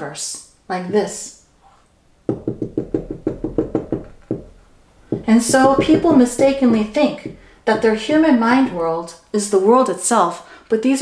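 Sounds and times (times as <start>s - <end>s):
marker tapping on glass: 2.3s - 8.0s.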